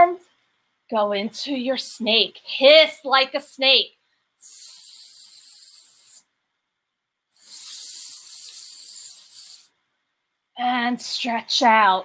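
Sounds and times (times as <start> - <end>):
woman hissing through teeth: 4.4 - 6.2, 7.4 - 9.7.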